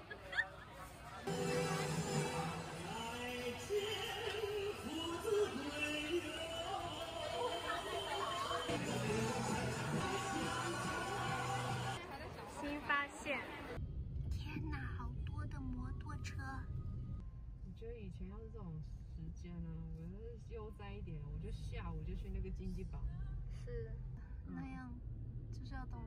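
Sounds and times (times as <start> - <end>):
people talking: 0.0 - 16.7, 17.7 - 25.0.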